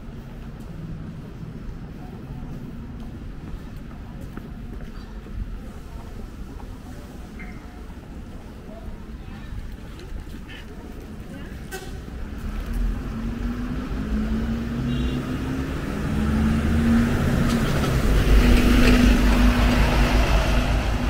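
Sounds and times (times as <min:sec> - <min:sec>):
bus engine passing: 0:10.8 - 0:21.0.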